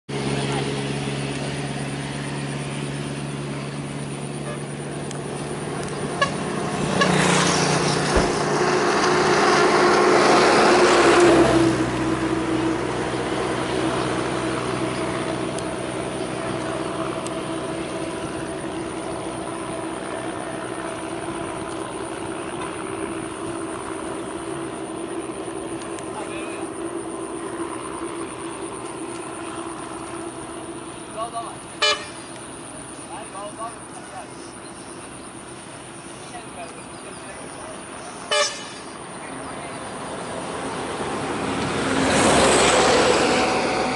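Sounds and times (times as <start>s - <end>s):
motor engine running: 0.1s - 43.9s.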